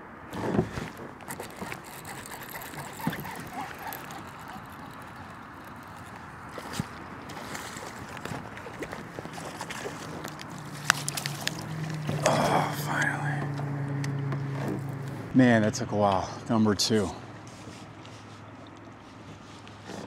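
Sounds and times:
water lapping around kayak: 0.1 - 15.3, 17.2 - 20.0.

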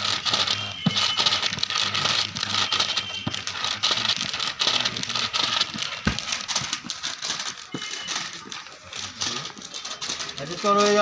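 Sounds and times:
paper rustling and shuffling: 0.0 - 11.0.

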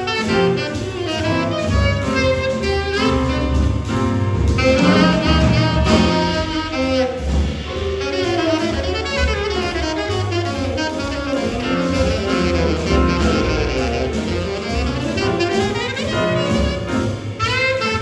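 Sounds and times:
saxophone: 0.0 - 3.9, 4.6 - 18.0
drum kit: 0.0 - 18.0
piano: 0.0 - 18.0
upright bass: 0.0 - 18.0.

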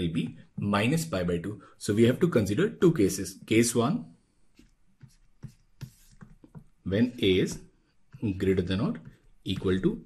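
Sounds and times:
stylus tapping on a tablet: 4.6 - 6.8, 8.9 - 10.0.

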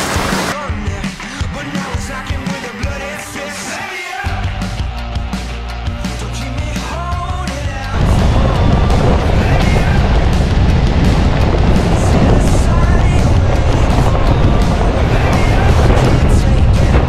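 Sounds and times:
rock music: 0.0 - 17.0
vehicle running: 8.0 - 17.0
wind rumble on microphone: 8.0 - 17.0.

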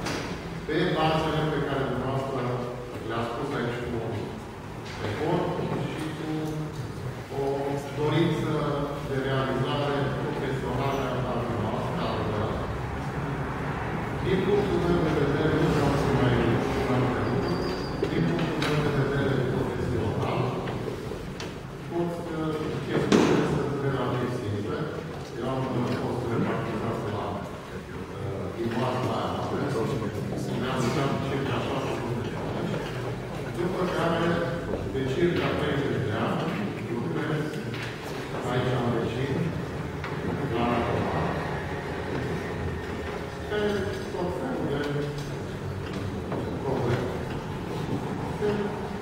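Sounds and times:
man's voice echoing in hall: 0.0 - 49.0.

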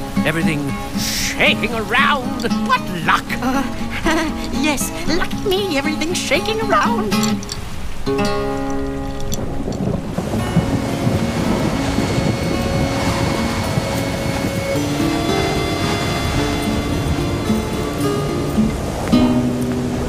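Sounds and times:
music with long held notes: 0.0 - 20.0
wind blowing: 0.0 - 20.0.

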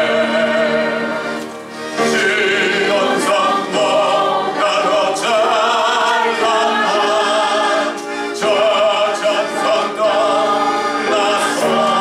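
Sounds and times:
man singing a hymn: 2.0 - 12.0.

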